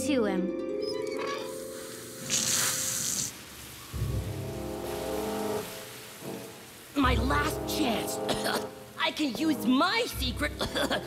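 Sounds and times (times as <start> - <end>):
cartoon background music: 0.0 - 2.6
pipe valve hissing spray: 1.5 - 6.9.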